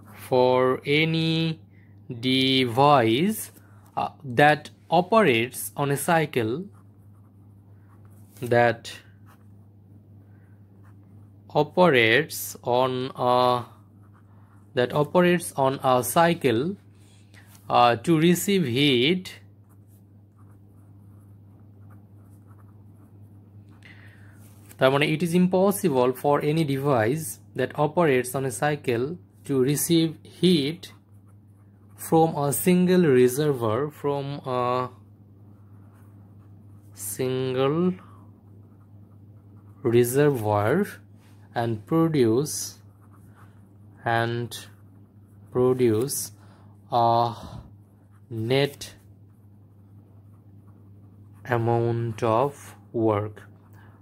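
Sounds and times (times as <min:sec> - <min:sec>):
steady low hum: 0:00.0 - 0:54.0
pen scratching on paper: 0:13.6 - 0:16.5, 0:19.6 - 0:23.5, 0:29.6 - 0:34.0, 0:34.9 - 0:41.1, 0:41.7 - 0:46.4, 0:47.2 - 0:54.0.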